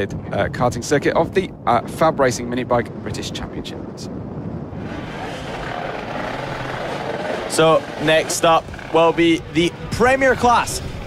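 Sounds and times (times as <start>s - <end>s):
small racing engines buzzing: 4.8s - 9.9s.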